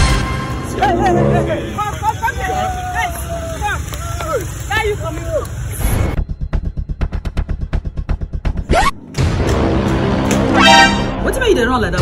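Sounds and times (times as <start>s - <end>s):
street traffic: 0.0s - 6.2s
people talking: 0.7s - 5.6s, 11.2s - 12.0s.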